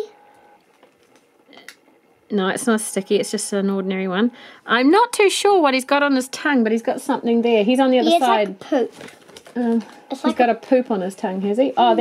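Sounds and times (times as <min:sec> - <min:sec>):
plastic toy handling noise: 0:08.9 - 0:10.0.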